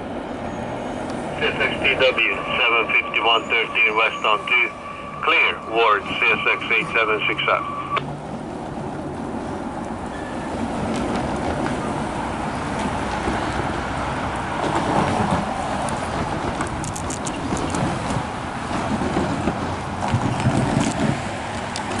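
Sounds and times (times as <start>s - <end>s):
freight cars rumbling on rails: 0.0s - 22.0s.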